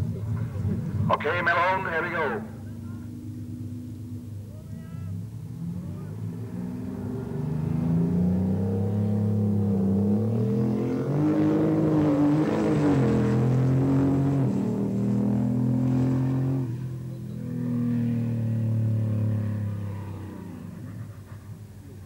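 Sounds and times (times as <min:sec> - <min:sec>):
truck engine revving hard: 0:05.5 - 0:21.3.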